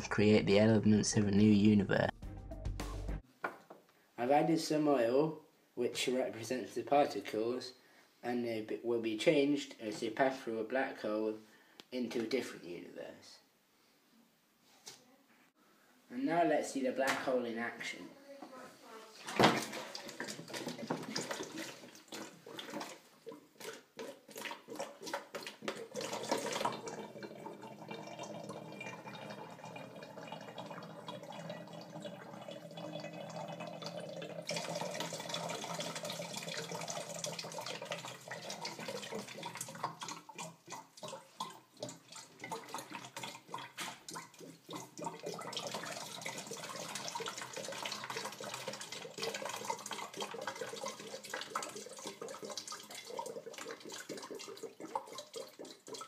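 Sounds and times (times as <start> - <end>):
water gurgling between bottles: 19.4 - 56.0.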